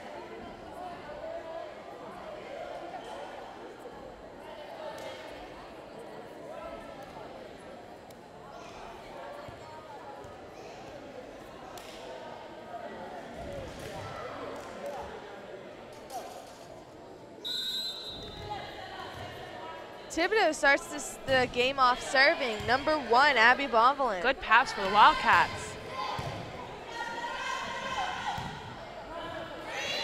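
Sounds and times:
referee's whistle: 17.4s - 18.5s
voices chattering: 19.8s - 28.3s.

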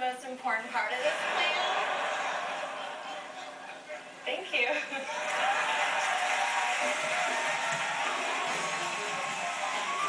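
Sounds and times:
audience applause: 5.0s - 10.0s
music playing: 6.6s - 10.0s.

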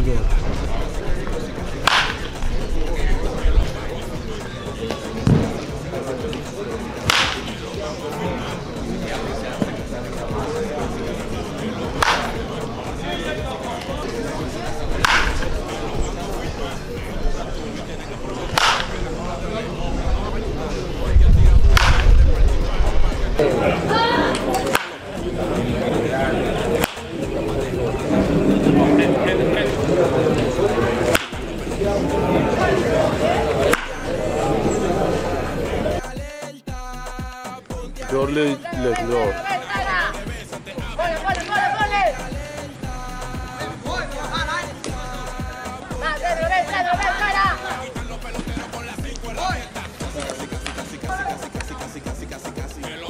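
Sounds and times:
voices talking and calling: 0.0s - 53.0s
wooden bat hitting balls: 1.2s - 2.8s, 4.8s - 7.7s, 9.1s - 13.0s, 13.6s - 15.9s, 18.5s - 19.2s, 21.7s - 22.3s, 24.3s - 27.4s, 29.7s - 34.1s, 41.2s - 41.8s, 48.4s - 51.8s
sharp crack: 1.8s - 2.5s, 7.0s - 7.6s, 12.0s - 12.4s, 14.9s - 15.6s, 18.5s - 19.0s, 21.7s - 22.3s, 24.3s - 25.0s, 26.8s - 27.1s, 31.1s - 31.4s, 33.7s - 34.0s.

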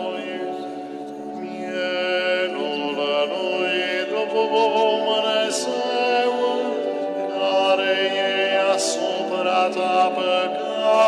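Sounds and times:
chant in long held notes: 0.0s - 11.0s.

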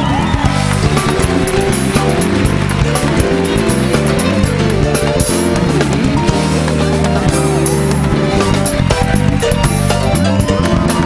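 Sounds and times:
bending guitar notes: 0.0s - 11.0s
live rock band: 0.0s - 11.0s.

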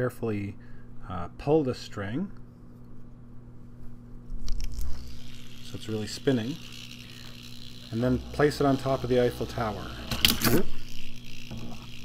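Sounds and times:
string pulled off gyroscope: 4.4s - 12.0s.

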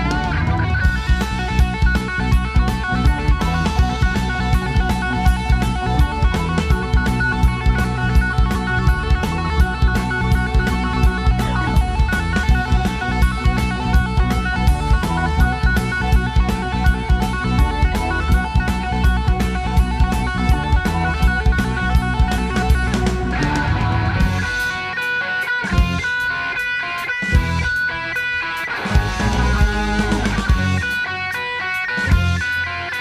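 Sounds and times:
bass: 0.0s - 33.0s
drum kit beat: 0.0s - 33.0s
electric guitar: 0.0s - 33.0s
keyboard: 0.0s - 33.0s.

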